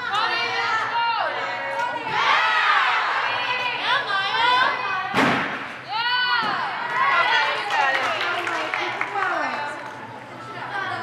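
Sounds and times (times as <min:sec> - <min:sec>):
girls shouting and cheering: 0:00.0 - 0:05.1, 0:05.8 - 0:08.1.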